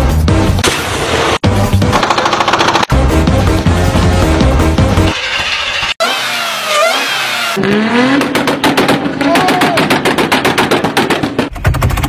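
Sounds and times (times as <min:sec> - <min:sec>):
car engine revving: 0:03.4 - 0:09.4
supercharger whine: 0:04.0 - 0:08.3.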